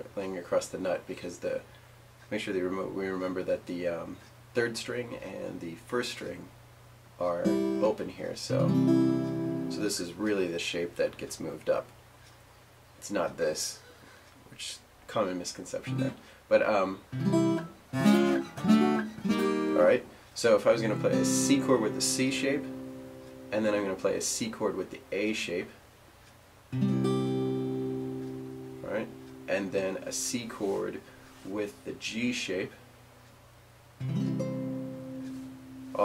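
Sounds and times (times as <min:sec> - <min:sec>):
acoustic guitar strummed: 0:07.4 - 0:10.1, 0:15.9 - 0:16.4, 0:17.1 - 0:25.6, 0:26.7 - 0:33.0, 0:34.0 - 0:36.0.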